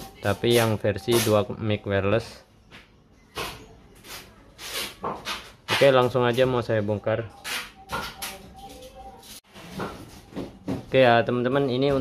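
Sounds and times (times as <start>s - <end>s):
man speaking: 0.0s - 2.4s, 5.8s - 7.3s.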